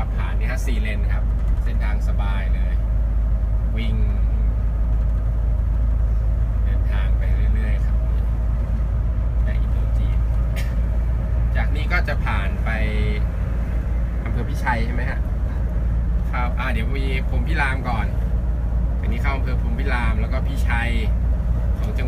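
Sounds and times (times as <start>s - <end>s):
coach engine and road drone: 0.0s - 22.0s.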